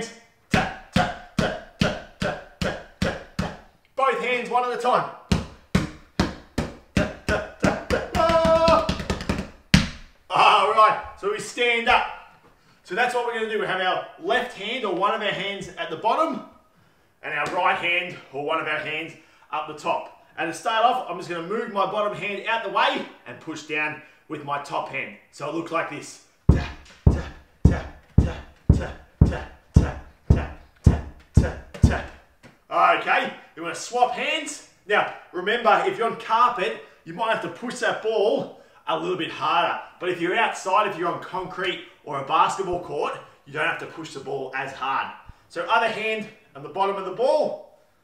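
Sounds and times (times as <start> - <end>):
ball bouncing on carpet: 5.3 - 10.0.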